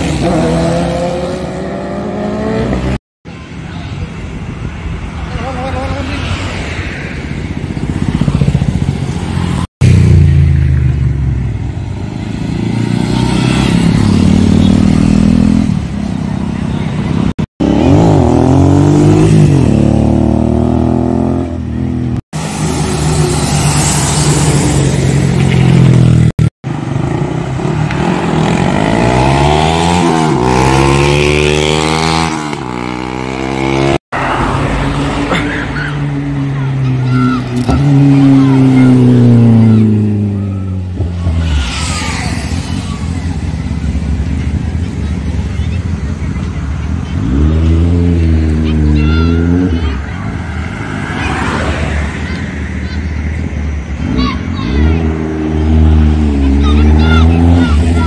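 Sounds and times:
motorcycles riding past revving: 5.6 - 58.0.

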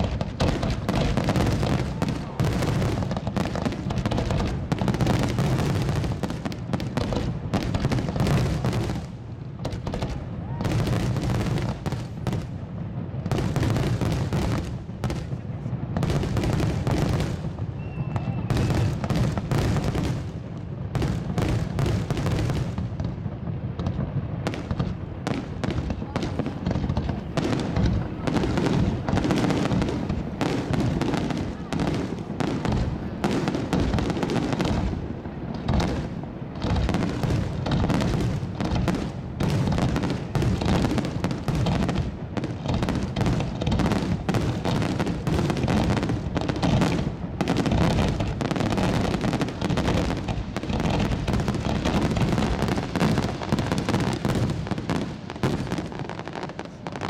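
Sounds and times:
fireworks booming: 0.0 - 57.0.

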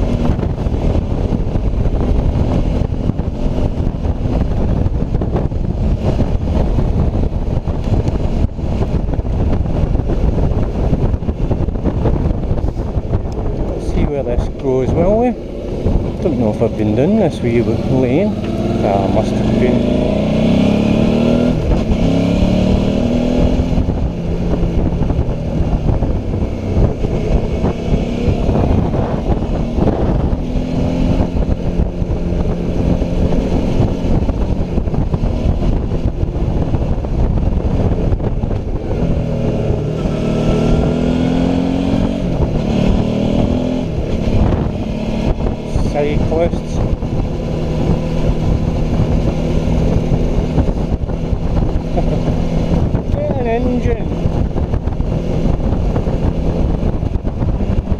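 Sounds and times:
motorcycle engine accelerating: 0.0 - 57.9
wind rushing over microphone: 0.0 - 57.9.

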